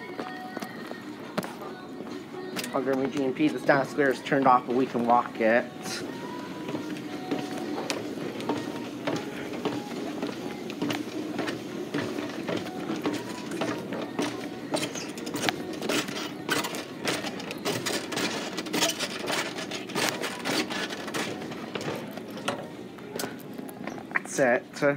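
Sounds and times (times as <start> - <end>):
store background music: 0.0 - 24.9
footsteps on metal steps: 2.5 - 24.2.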